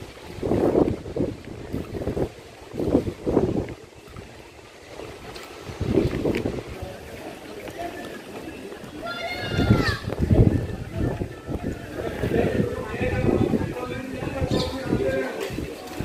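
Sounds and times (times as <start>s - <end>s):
steady outdoor hiss: 0.0s - 16.0s
wind buffeting microphone: 0.0s - 16.0s.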